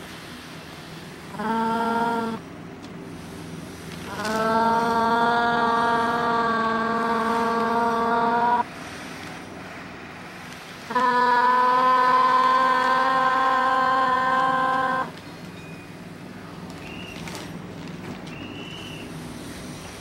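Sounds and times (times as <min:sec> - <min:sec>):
low steady hum: 0:00.0 - 0:20.0
woman singing long aah: 0:04.1 - 0:08.7, 0:10.9 - 0:15.1.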